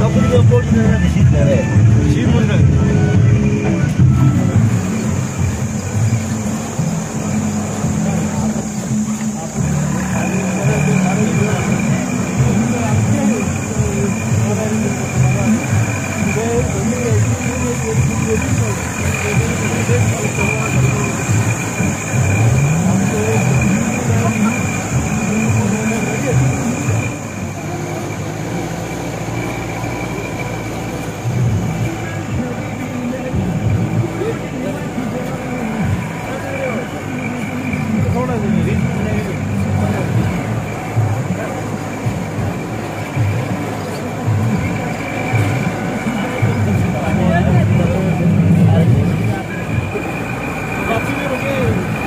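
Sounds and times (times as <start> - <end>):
car engine running: 0.0 - 52.0
indistinct voices: 0.0 - 52.0.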